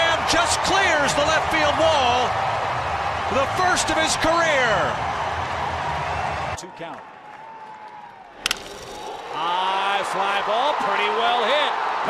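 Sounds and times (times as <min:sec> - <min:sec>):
baseball bat crack: 0:08.3 - 0:09.4.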